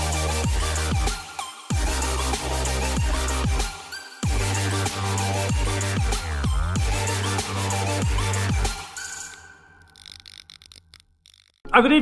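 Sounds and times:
faint crackling clicks: 9.1 - 11.8.

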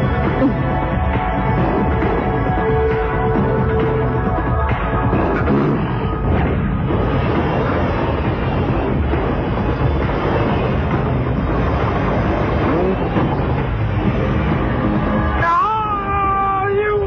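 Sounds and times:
rumbling roar: 0.0 - 16.4
dramatic background music: 0.0 - 17.0.

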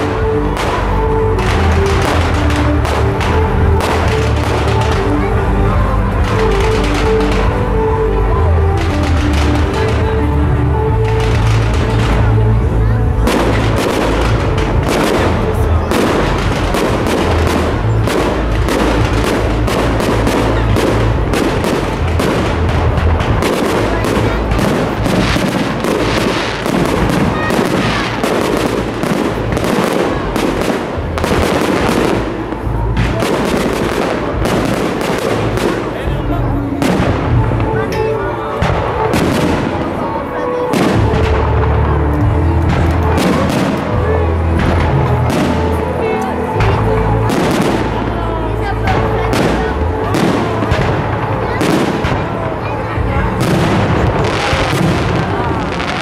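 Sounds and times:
fireworks bursting and crackling: 0.0 - 56.0
music playing: 0.0 - 56.0.

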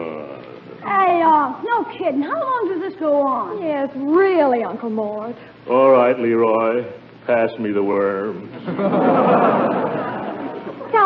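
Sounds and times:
studio audience laughing: 8.6 - 11.0.

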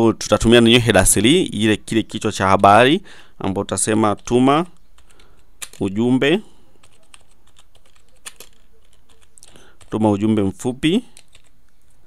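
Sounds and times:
computer keyboard typing: 5.0 - 5.9, 6.7 - 10.0, 11.1 - 12.0.

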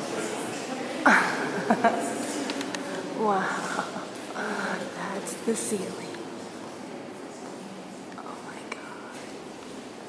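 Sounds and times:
people whispering: 0.0 - 9.3.

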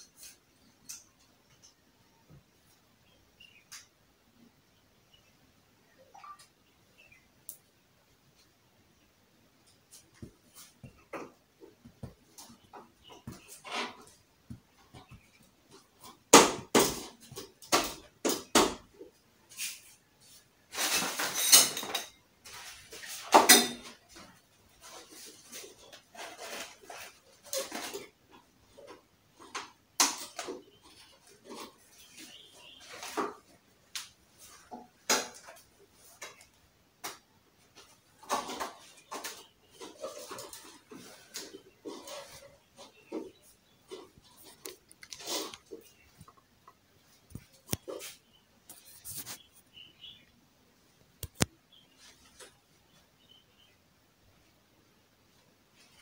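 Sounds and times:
tubes and connectors knocking: 10.2 - 18.9
scraping rustle: 19.5 - 29.6, 37.7 - 46.4, 47.0 - 50.2.

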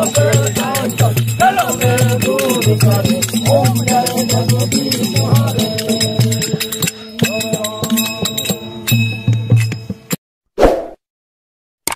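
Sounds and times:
sharp rattling percussion: 0.0 - 10.1.

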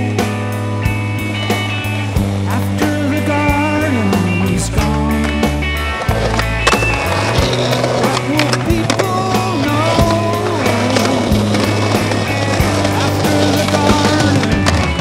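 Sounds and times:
music: 0.0 - 15.0
skateboard rolling over concrete: 0.0 - 15.0.

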